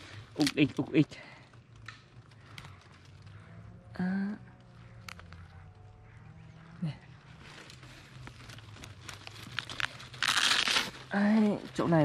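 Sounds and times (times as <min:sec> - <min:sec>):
dry fibres crackling and rustling: 0:00.0 - 0:12.0.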